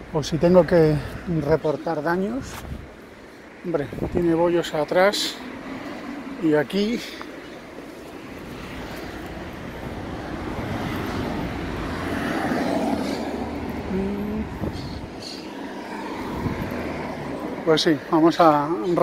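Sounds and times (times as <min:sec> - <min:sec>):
vehicle passing: 0:00.0 - 0:19.0.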